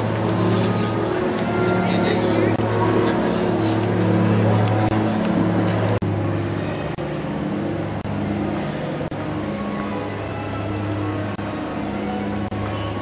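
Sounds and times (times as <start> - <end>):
steady low hum: 0.0 - 13.0
voices of passers-by: 0.0 - 13.0.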